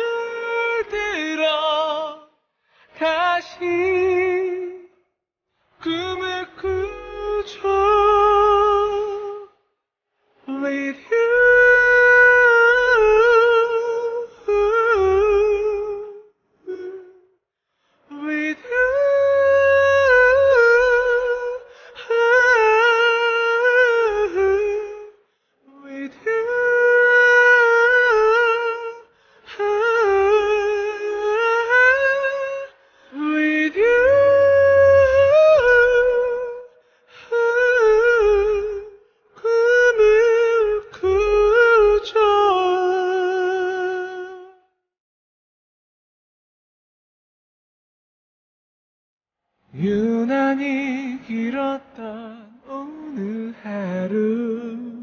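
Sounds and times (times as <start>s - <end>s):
man singing with vibrato: 0.0s - 5.0s, 5.8s - 9.6s, 10.4s - 17.3s, 18.1s - 44.7s, 49.7s - 55.0s
breath: 2.5s - 3.0s, 17.6s - 18.1s, 21.7s - 22.0s, 25.2s - 25.6s, 29.1s - 29.5s, 32.8s - 33.2s, 36.7s - 37.3s
man humming a melody: 11.2s - 17.3s, 18.4s - 25.2s, 26.5s - 44.7s.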